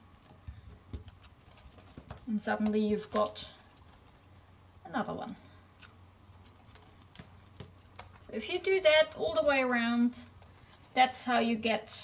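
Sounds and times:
plant strips rustling: 0.0s - 12.0s.

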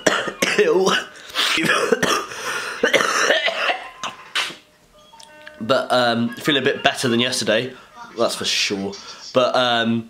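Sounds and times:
man clearing his throat: 0.0s - 3.8s
man coughing: 0.0s - 4.2s
man laughing: 6.1s - 8.0s.

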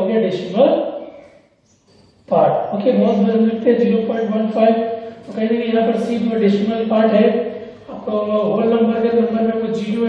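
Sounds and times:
man talking: 2.3s - 10.0s.

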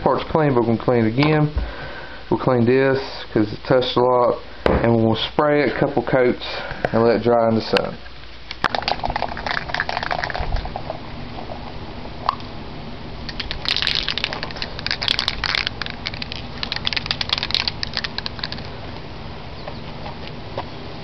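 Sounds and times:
clicking and crackling: 13.3s - 18.7s
spray paint can hissing: 13.3s - 18.7s.

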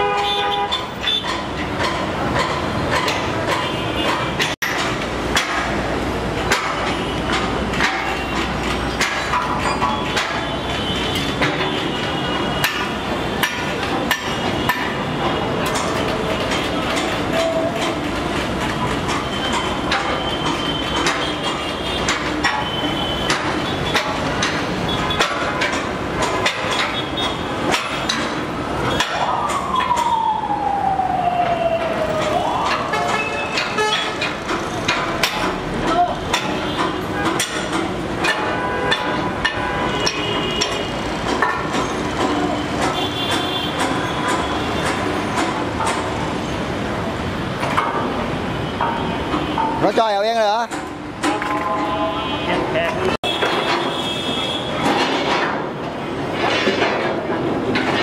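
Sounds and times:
metal knocks and clanks: 0.0s - 30.4s, 31.4s - 58.0s
siren-like wail falling in pitch: 29.2s - 33.3s.

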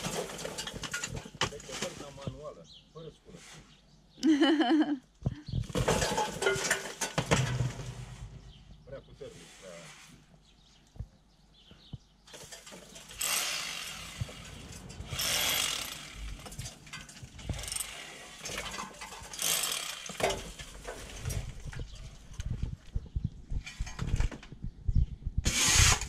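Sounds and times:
tool scraping brick wall: 12.3s - 22.8s, 25.4s - 26.0s.

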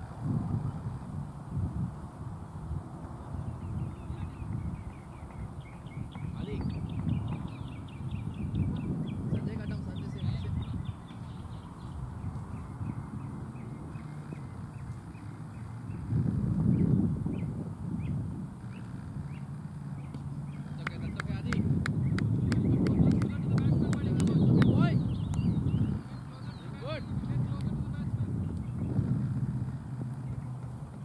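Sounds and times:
wind rumbling on microphone: 0.0s - 31.0s
distant players calling: 3.1s - 16.3s, 17.4s - 31.0s.

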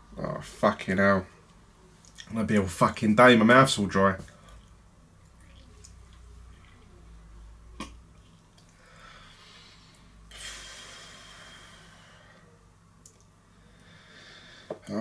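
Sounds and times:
breathy hiss: 8.7s - 12.6s, 13.4s - 14.9s
man breathing: 8.7s - 12.6s, 13.4s - 14.9s.

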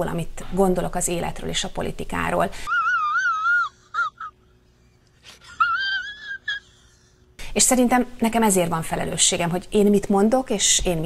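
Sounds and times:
man whimpering cry: 2.7s - 4.6s, 5.2s - 7.2s.

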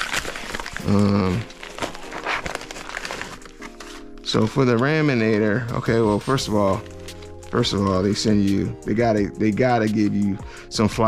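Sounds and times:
plastic packaging crinkling: 0.0s - 9.2s.

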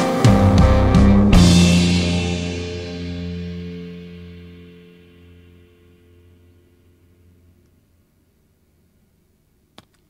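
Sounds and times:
cymbals ringing: 0.0s - 7.2s
electric guitar chord ringing: 0.0s - 7.7s.

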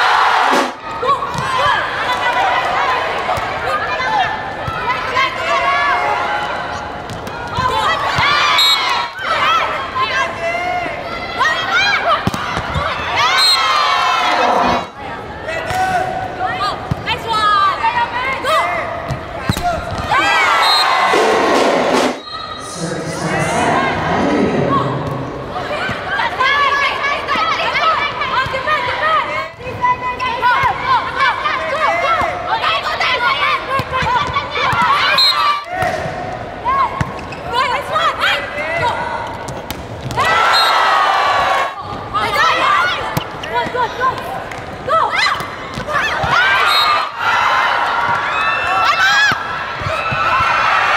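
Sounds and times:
crowd cheering: 0.0s - 15.0s, 19.8s - 29.2s, 40.1s - 50.9s
shoes squeaking on court floor: 43.2s - 43.8s.

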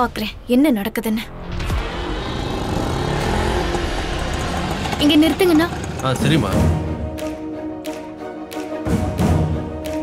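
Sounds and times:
small engine running: 1.7s - 6.8s.

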